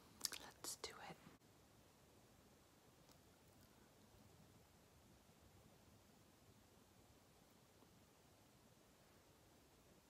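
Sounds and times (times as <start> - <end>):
woman whispering: 0.3 - 1.3.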